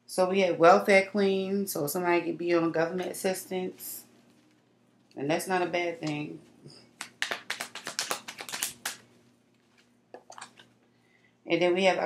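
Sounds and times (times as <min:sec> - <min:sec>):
crisp card slaps: 0:07.0 - 0:09.1.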